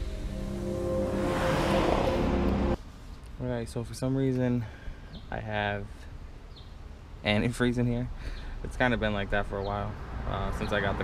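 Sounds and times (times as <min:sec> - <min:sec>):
car sound effect: 0:00.0 - 0:02.8
sustained music tones: 0:00.0 - 0:02.8.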